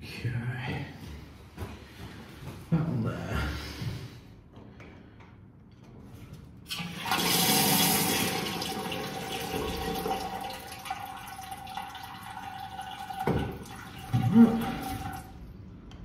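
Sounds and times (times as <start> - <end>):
water rushing through valve: 6.7 - 15.3.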